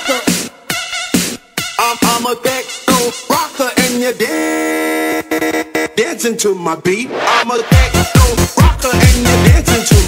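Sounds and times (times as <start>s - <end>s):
processed voice: 0.0s - 0.4s, 5.8s - 10.0s
buzzing synth tone: 4.4s - 6.0s
choppy stutter effects: 6.9s - 8.4s.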